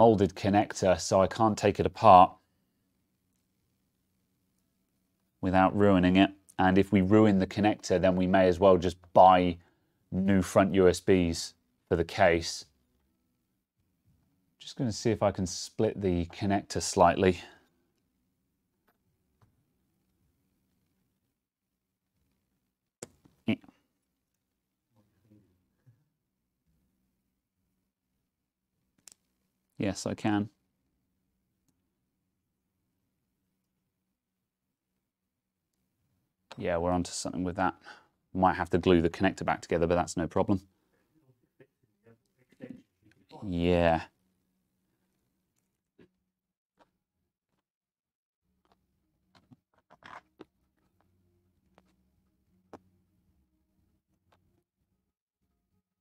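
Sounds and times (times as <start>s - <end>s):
metal pin scraping plastic: 49.4s - 50.5s.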